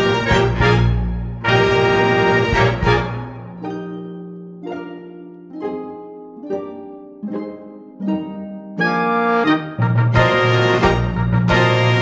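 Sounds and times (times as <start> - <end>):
orchestral backing track: 0.0 - 12.0.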